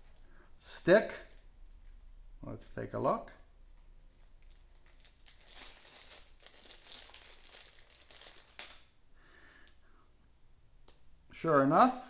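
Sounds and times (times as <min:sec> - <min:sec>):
plastic packet crinkling: 0:03.8 - 0:08.9.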